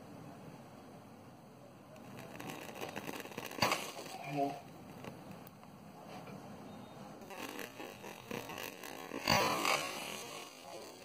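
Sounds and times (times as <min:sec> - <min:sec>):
crackling fizz: 0:01.9 - 0:05.7, 0:07.2 - 0:11.0
hiss of flame: 0:02.0 - 0:05.4, 0:07.2 - 0:11.0.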